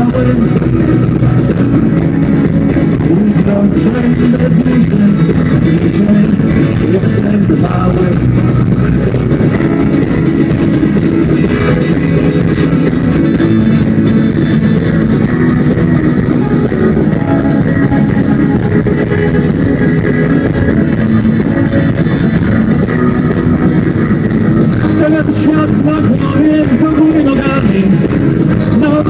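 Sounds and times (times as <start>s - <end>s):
bass guitar: 0.0s - 29.0s
drum kit: 0.0s - 29.0s
electric guitars: 0.0s - 29.0s.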